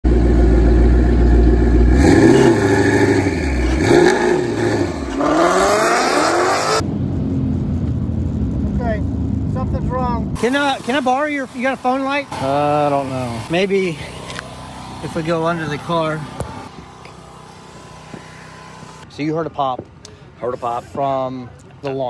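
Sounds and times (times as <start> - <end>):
car engine revving: 0.0 - 19.1
person speaking: 9.6 - 14.3.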